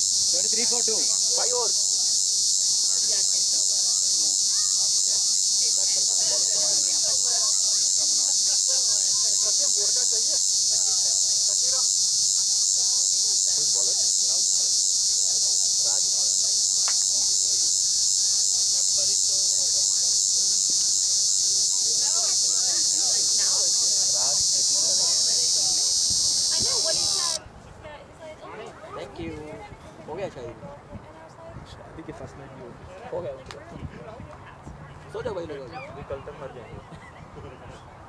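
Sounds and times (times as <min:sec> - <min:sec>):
insects chirring: 0:00.0 - 0:27.4
faint distant voices: 0:00.0 - 0:38.0.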